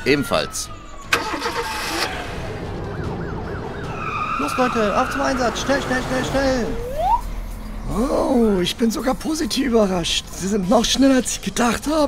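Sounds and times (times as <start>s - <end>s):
car engine starting and running: 1.0s - 8.4s.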